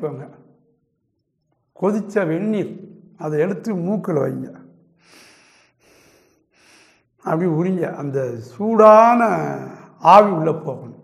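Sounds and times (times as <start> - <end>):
man breathing through nose: 5.0 - 7.2.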